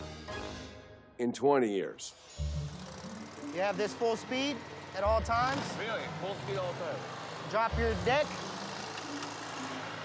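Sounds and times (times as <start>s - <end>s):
riding mower engine humming: 2.4s - 10.0s.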